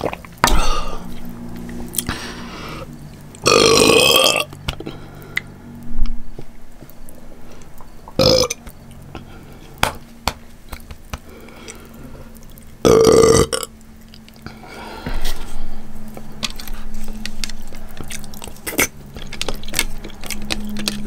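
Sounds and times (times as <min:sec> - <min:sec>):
woman burping: 0:12.9 - 0:13.7.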